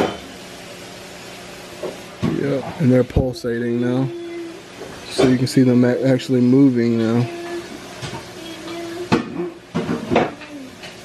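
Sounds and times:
aquarium pump hum and hiss: 0.0 - 11.0.

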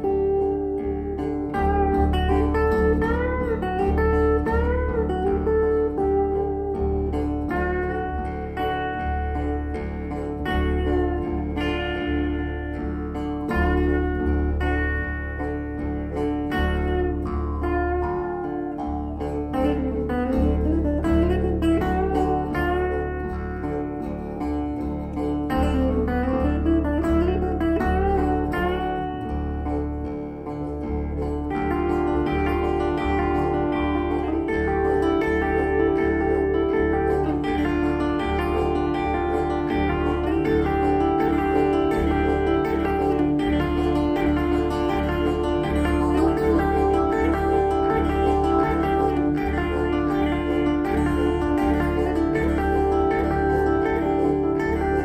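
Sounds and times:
acoustic guitar strumming: 0.0 - 55.0
jew's harp twanging: 0.0 - 55.0.

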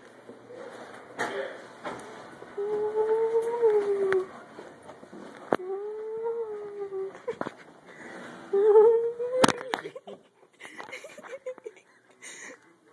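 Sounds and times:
person humming: 2.6 - 4.3, 5.6 - 7.4, 8.5 - 9.7.

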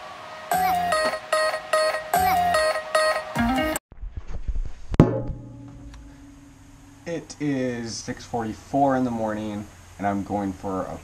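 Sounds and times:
low steady hum: 5.0 - 11.0.

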